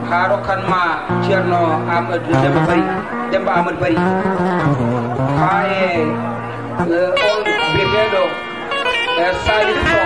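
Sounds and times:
plucked string music: 0.0s - 10.0s
man singing wavering notes: 0.1s - 10.0s.

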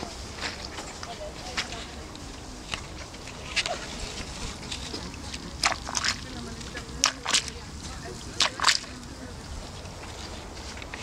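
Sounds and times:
boots walking through wet grass: 0.0s - 11.0s.

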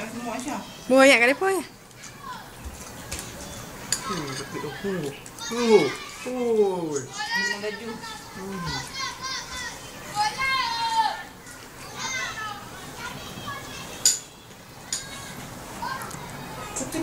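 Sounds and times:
children calling and chattering: 0.0s - 17.0s.

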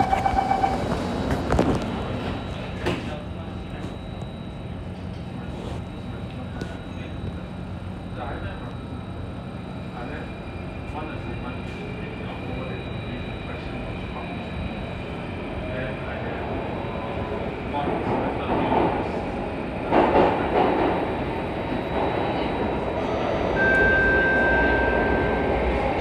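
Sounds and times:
steady high tone: 0.0s - 0.9s, 23.5s - 26.0s
metro train wheels rumbling: 0.0s - 26.0s.

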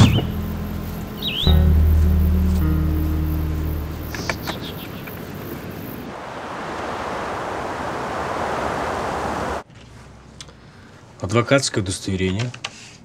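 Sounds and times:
car road and wind noise: 3.3s - 9.6s.

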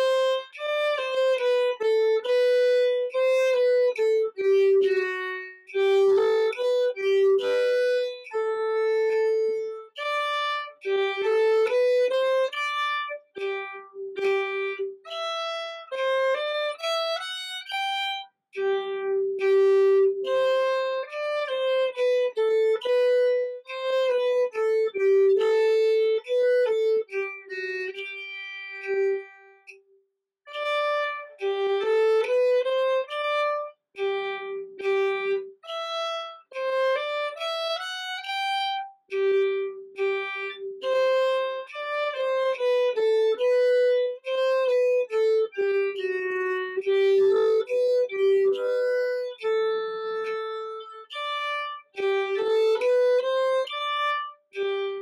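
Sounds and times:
solo violin melody: 0.0s - 29.8s, 30.5s - 55.0s.

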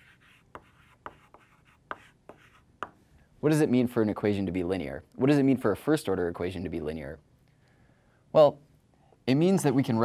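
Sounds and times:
chalk scratching on blackboard: 0.0s - 3.0s
chalk tapping on board: 0.0s - 3.0s.

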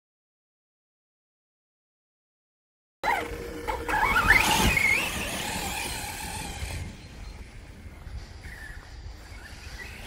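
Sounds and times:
toy truck electric motor whining: 3.0s - 7.4s.

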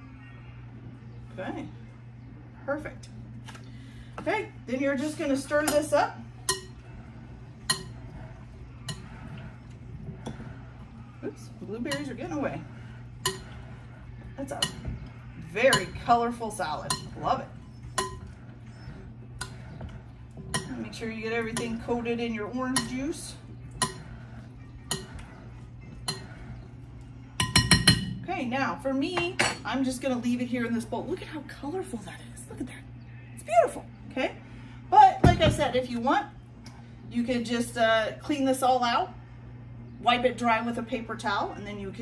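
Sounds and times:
soft stirring of fruit: 0.1s - 31.4s
spoon clinking against bowl: 6.4s - 6.8s, 7.7s - 8.0s, 16.9s - 17.2s, 22.7s - 23.0s, 24.8s - 25.2s, 26.0s - 26.4s, 27.4s - 28.2s
utensil clinking against bowl: 6.4s - 6.9s, 7.6s - 8.1s, 8.8s - 9.4s, 13.2s - 13.8s, 14.5s - 22.0s, 22.6s - 26.6s, 27.4s - 28.2s.

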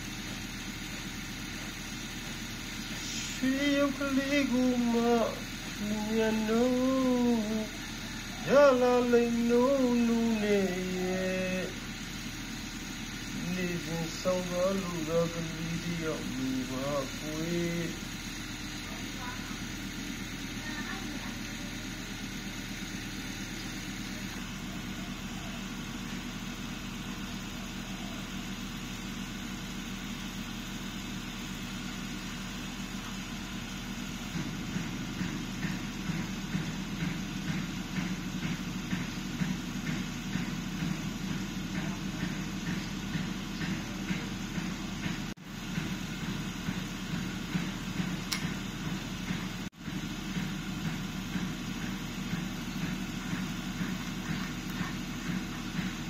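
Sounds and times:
low mechanical hum: 0.0s - 56.0s.

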